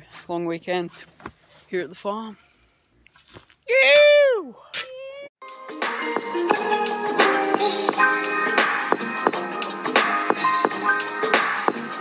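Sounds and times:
boy yelling: 3.7s - 5.3s.

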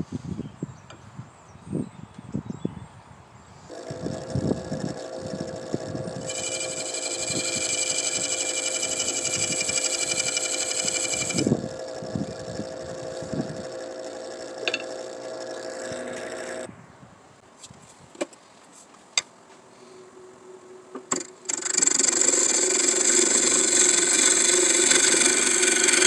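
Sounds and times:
gouge scraping whine: 3.7s - 16.7s, 21.0s - 26.0s
wood lathe humming: 3.7s - 16.7s, 21.2s - 26.0s.

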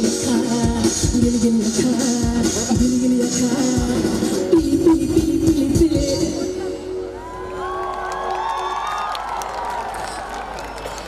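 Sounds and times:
crowd cheering and screaming: 6.4s - 11.0s.

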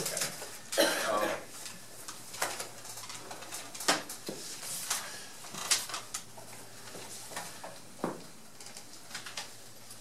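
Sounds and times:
paper rustling: 1.5s - 10.0s.

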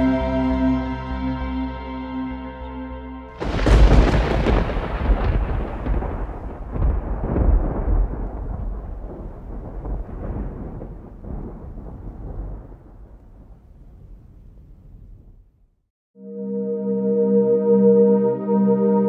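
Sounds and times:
thunder crash and rumble: 3.4s - 15.5s.

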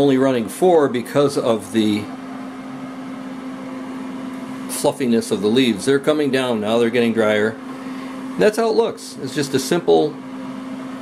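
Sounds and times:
dehydrator fan humming: 0.0s - 11.0s.

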